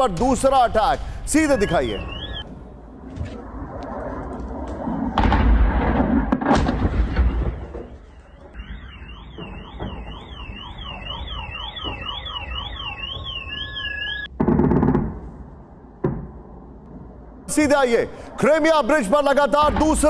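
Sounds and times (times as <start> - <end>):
electronic alarm warbling: 1.4 - 2.5, 8.2 - 14.3
loud explosions: 4.8 - 11.5.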